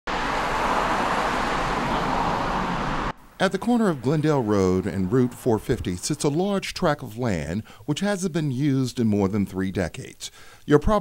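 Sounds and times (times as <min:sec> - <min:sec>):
cars passing on road: 0:00.0 - 0:06.8.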